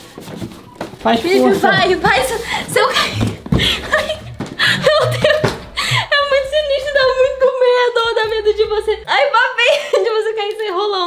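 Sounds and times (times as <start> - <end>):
woman laughing: 2.1 - 7.4, 9.6 - 10.2.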